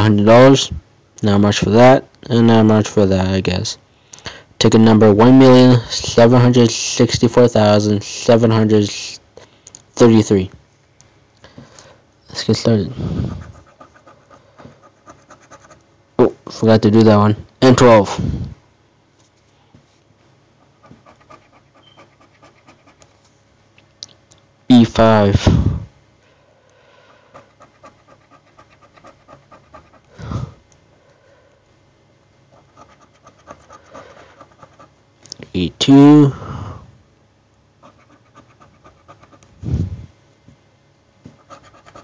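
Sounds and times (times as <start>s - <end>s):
scratching a lottery ticket: 13.1s - 15.8s, 20.6s - 23.2s, 27.1s - 30.2s, 32.5s - 35.0s, 37.8s - 39.5s, 41.4s - 42.0s.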